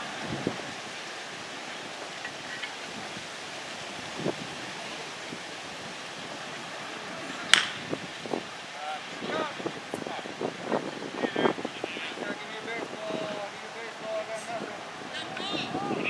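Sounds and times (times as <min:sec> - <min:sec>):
wind noise on microphone: 0:00.0 - 0:16.0
bat hitting baseball: 0:07.5 - 0:07.8.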